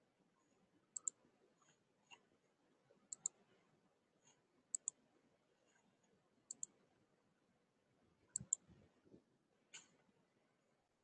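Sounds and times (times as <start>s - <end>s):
computer mouse double-clicks: 1.0s - 1.2s, 3.1s - 3.4s, 4.7s - 5.0s, 6.5s - 6.7s, 8.3s - 8.6s.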